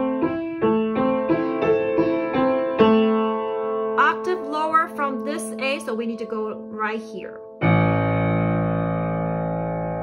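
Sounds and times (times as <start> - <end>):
low piano chord: 0.0 - 6.0, 7.4 - 10.0.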